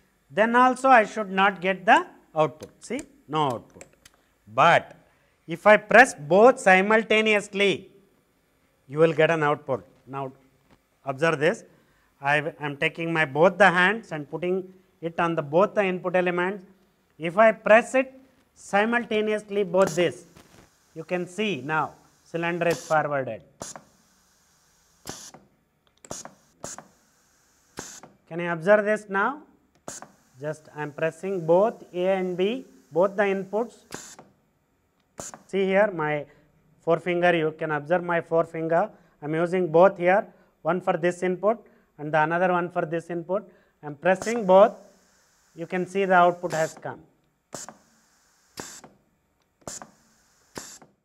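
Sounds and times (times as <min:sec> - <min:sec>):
valve clicks: 0:02.5 - 0:05.0, 0:19.7 - 0:28.2, 0:29.7 - 0:34.4, 0:35.0 - 0:35.6, 0:44.1 - 0:51.0
compressed air hissing: 0:19.7 - 0:25.4, 0:26.0 - 0:28.2, 0:29.8 - 0:34.3, 0:35.2 - 0:35.6, 0:44.1 - 0:46.9, 0:47.5 - 0:49.0, 0:49.6 - 0:51.0.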